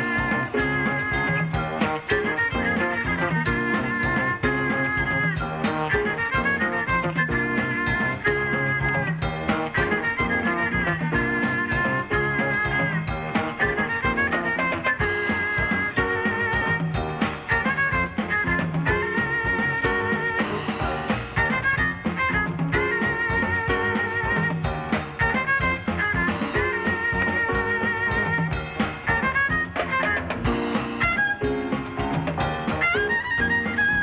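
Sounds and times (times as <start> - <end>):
swing jazz band: 0.0 - 34.0
violin melody: 0.0 - 34.0.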